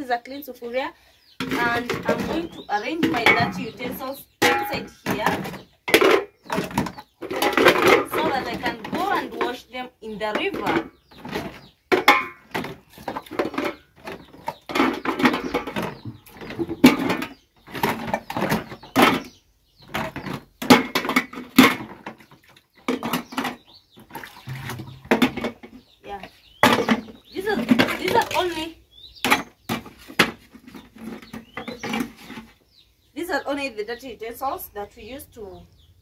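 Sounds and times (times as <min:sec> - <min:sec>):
woman talking: 0:00.0 - 0:05.5, 0:07.9 - 0:10.9, 0:26.0 - 0:26.3, 0:27.3 - 0:28.8, 0:33.2 - 0:35.7
metal dishes clattering: 0:01.4 - 0:09.6, 0:10.3 - 0:23.7, 0:24.3 - 0:25.8, 0:26.6 - 0:32.5.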